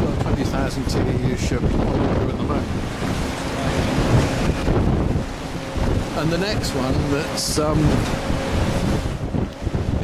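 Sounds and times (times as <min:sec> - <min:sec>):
water washing against quay: 0:00.0 - 0:10.0
wind buffeting microphone: 0:00.0 - 0:10.0.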